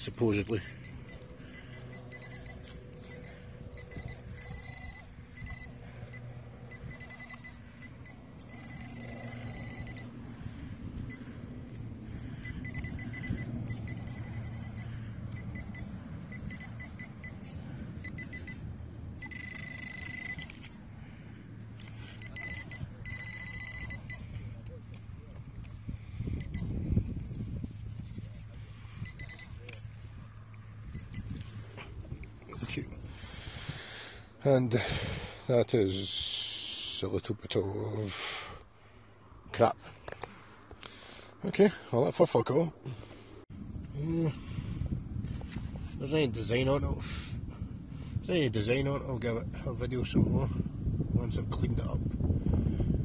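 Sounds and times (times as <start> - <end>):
pinpointer high beep tone: 0.7 - 10.2, 11.0 - 11.4, 12.4 - 20.7, 22.0 - 24.8, 26.4 - 26.7, 29.0 - 29.8, 30.9 - 31.4.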